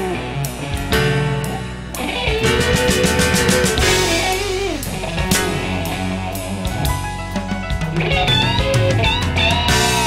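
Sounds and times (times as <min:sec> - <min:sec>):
electric guitar: 0:00.0 - 0:10.0
steady bass line: 0:00.0 - 0:10.0
drum and cymbal hits: 0:02.3 - 0:10.0.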